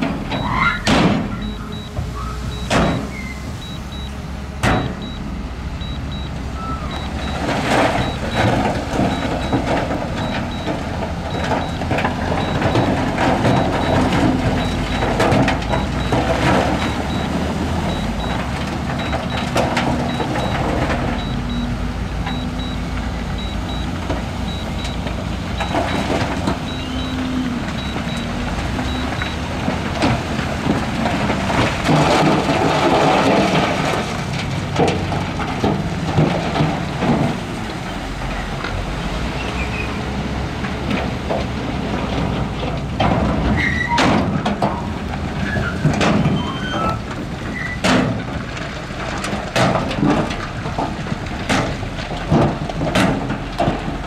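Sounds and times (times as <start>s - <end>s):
knocks and clattering: 0.0s - 5.2s, 6.9s - 38.8s, 40.6s - 54.0s
diesel engines running: 0.0s - 54.0s.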